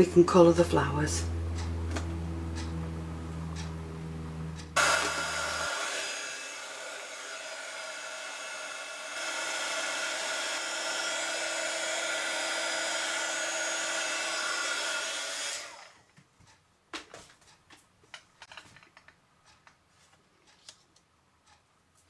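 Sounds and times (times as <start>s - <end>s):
low hum: 0.0s - 7.3s
heat gun blowing air: 4.8s - 16.0s.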